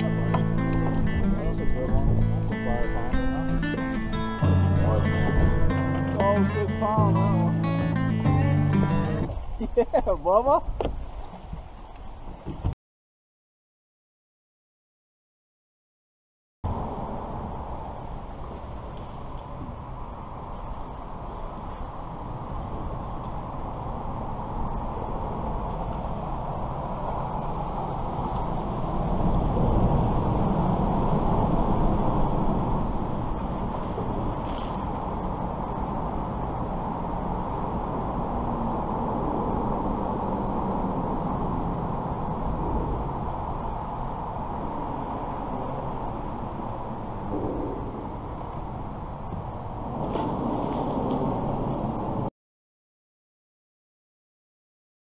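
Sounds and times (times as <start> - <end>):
road traffic on bridge overhead: 0.0 - 9.5, 16.7 - 52.3.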